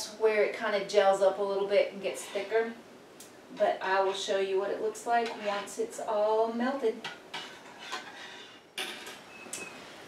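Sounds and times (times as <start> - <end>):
spoon scraping a saucepan: 2.0 - 2.7, 3.8 - 4.4, 5.1 - 5.9, 7.3 - 8.7.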